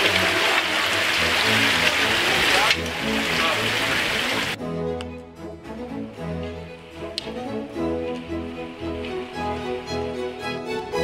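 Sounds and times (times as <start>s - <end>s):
stream running over rocks: 0.0s - 4.6s
background music: 0.0s - 11.0s.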